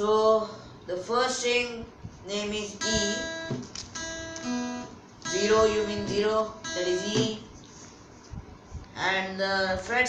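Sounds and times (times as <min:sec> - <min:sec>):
person speaking: 0:00.9 - 0:03.7, 0:05.2 - 0:07.8
acoustic guitar notes plucked: 0:02.4 - 0:07.6.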